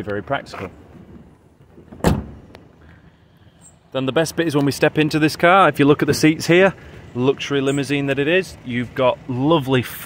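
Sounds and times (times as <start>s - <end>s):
car tailgate thunk: 1.9s - 2.5s.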